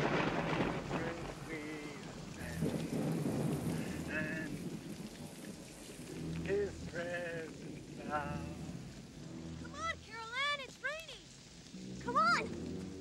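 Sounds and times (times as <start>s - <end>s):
rain falling: 0.0s - 13.0s
man singing hymn notes: 6.5s - 8.7s.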